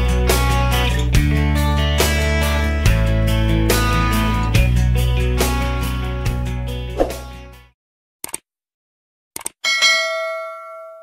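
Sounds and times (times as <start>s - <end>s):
bright bell ding: 9.6s - 11.0s.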